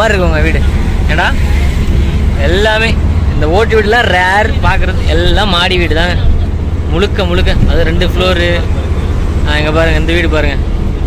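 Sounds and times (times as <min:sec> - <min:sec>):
engine and road noise: 0:00.0 - 0:11.0.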